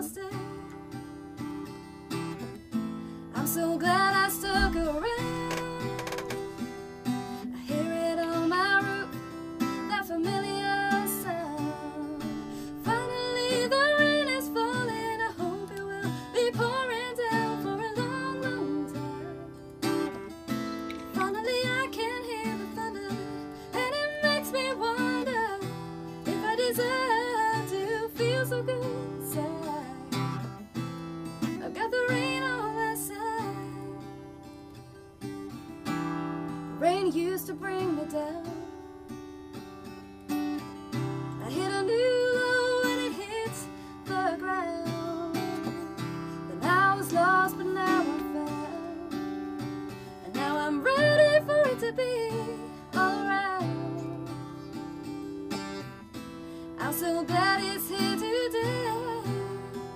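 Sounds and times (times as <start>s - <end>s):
woman singing: 0.0s - 2.4s, 3.2s - 34.9s, 36.5s - 39.3s, 40.6s - 59.9s
strummed acoustic guitar: 0.0s - 59.9s.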